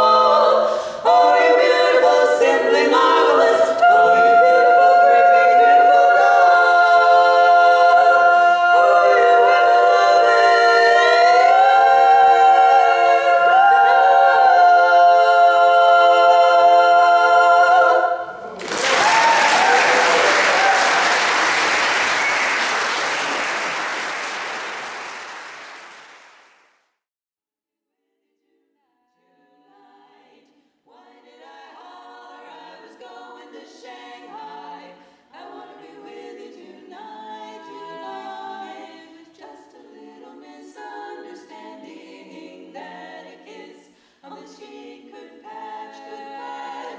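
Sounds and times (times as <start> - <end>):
women singing a cappella harmony: 0.0 - 18.5, 28.5 - 46.9.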